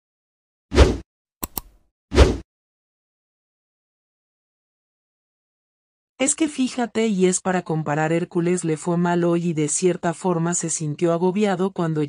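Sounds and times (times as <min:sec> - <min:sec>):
sharp double click: 0:01.4 - 0:01.8.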